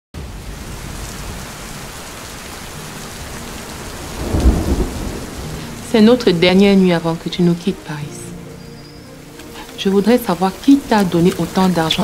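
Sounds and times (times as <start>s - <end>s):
thunder rumbling: 0.2s - 8.2s
heavy rain falling: 0.2s - 12.0s.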